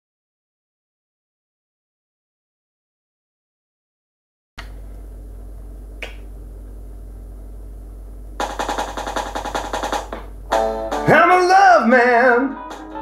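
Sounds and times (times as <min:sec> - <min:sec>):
low electrical hum: 0:04.6 - 0:13.0
guitar strumming: 0:08.4 - 0:13.0.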